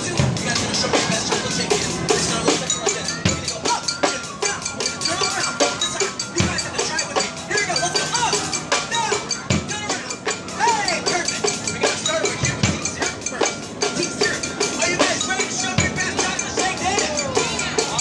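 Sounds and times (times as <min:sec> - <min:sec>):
barrel drums fast beat: 0:00.0 - 0:18.0.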